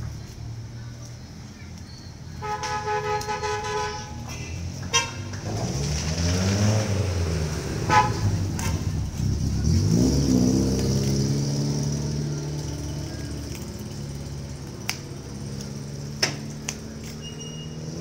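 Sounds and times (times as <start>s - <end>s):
passing vehicle engines: 0.0s - 18.0s
vehicle horn: 2.4s - 5.3s, 7.8s - 8.8s.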